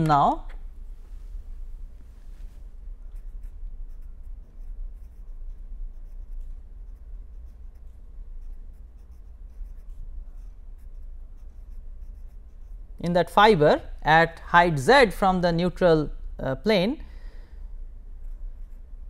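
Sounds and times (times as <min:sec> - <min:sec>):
steady low hum: 0:00.0 - 0:19.0
pen scratching on paper: 0:03.0 - 0:12.9, 0:18.2 - 0:19.0.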